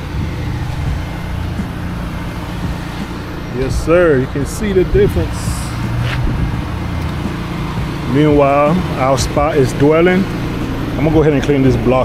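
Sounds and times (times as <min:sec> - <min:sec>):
engine droning: 0:00.0 - 0:12.0.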